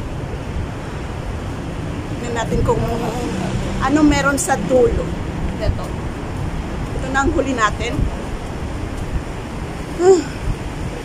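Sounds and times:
wind blowing across microphone: 0:00.0 - 0:11.0.

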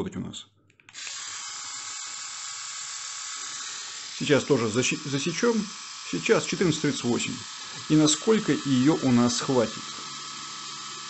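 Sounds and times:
electric shaver buzzing: 0:00.9 - 0:11.0.

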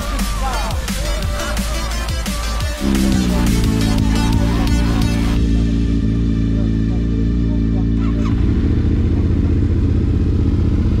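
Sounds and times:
music: 0:00.0 - 0:08.3
motorcycle engine idling: 0:00.0 - 0:11.0.

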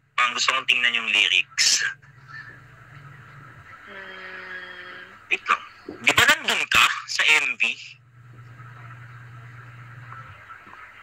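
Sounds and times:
faint low background hum: 0:00.0 - 0:11.0
person humming: 0:03.9 - 0:05.2.

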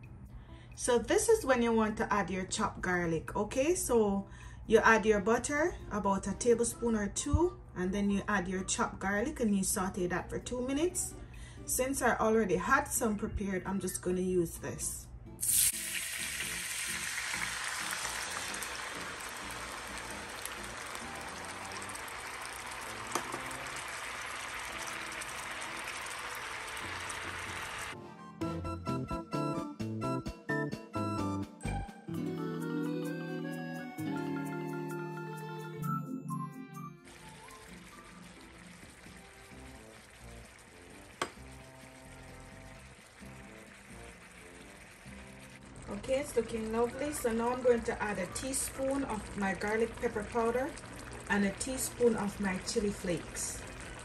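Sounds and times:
quiet background music: 0:00.0 - 0:54.0
butter sizzling in a hot wok: 0:15.4 - 0:28.0, 0:37.1 - 0:54.0.

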